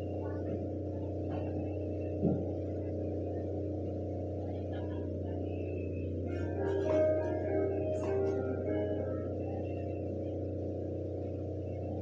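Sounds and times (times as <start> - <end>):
electrical hum: 0.0 - 12.0
soft thump: 2.2 - 2.5
held musical notes: 6.3 - 10.0.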